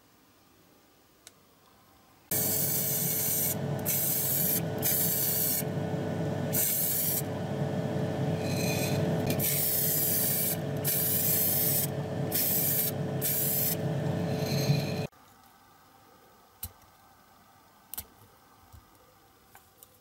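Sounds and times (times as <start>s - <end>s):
paint spray hissing: 2.3s - 5.7s, 6.5s - 7.3s, 9.4s - 13.8s
steady hum: 2.3s - 15.1s.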